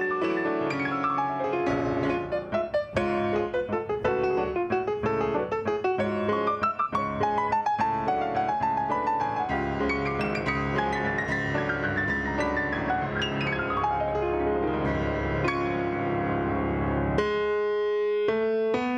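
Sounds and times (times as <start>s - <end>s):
solo piano playing: 0.0s - 18.9s.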